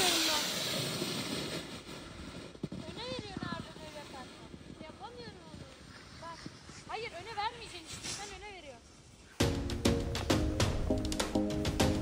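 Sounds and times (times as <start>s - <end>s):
skis sliding on packed snow: 0.0s - 9.4s.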